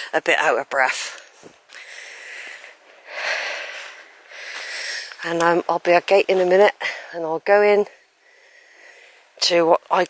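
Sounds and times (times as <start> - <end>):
woman breathing heavily: 1.3 - 5.2, 8.0 - 9.4.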